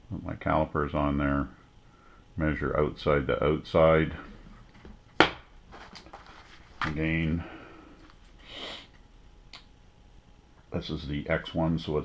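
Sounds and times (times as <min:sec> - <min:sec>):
faint handling noises: 0:04.2 - 0:09.0.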